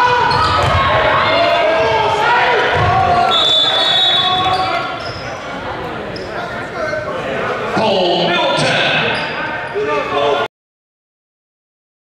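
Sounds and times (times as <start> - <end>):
basketball bouncing: 0.0 - 1.1
voices echoing in hall: 0.0 - 10.5.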